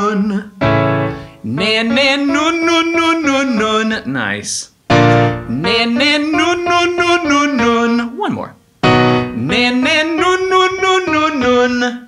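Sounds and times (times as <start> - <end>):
man singing vocal exercise: 0.0 - 0.6, 1.4 - 4.8, 5.4 - 8.6, 9.3 - 12.0
piano chord: 0.6 - 3.7, 4.9 - 8.2, 8.8 - 11.6.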